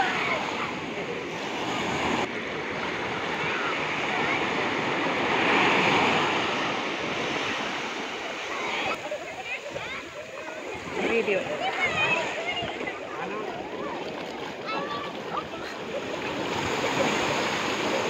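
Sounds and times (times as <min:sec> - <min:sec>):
small waves breaking: 0:00.0 - 0:18.0.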